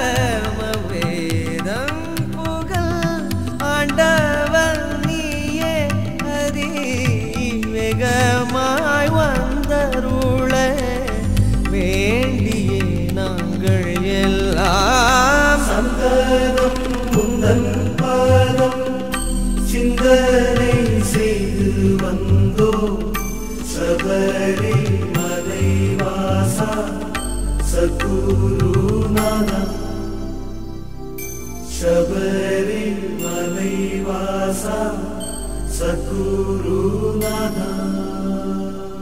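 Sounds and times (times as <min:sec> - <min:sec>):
devotional song chanting: 0:00.0 - 0:39.0
pitch-bending drum strokes: 0:09.1 - 0:29.8.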